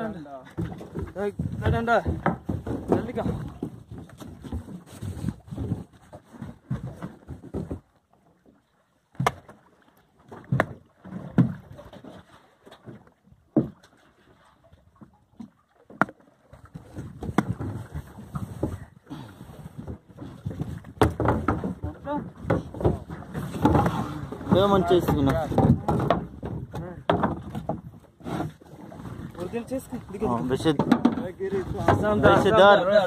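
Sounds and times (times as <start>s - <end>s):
knocks and thuds on a boat: 0.0s - 33.0s.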